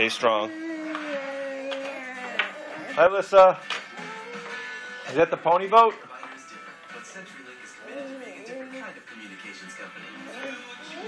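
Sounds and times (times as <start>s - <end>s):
television music: 0.0s - 11.0s.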